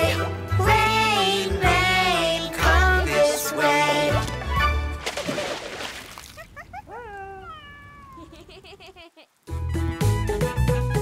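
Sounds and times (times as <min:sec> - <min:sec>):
cartoon cat meowing: 0:07.0 - 0:08.2.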